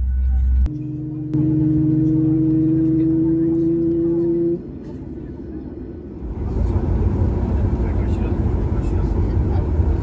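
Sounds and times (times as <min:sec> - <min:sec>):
jet engine rumble: 0:00.5 - 0:10.0.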